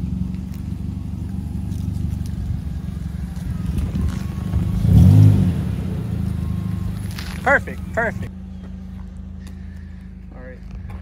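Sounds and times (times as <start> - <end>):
engine revving: 0.0 - 9.6
car engine idling: 0.0 - 11.0.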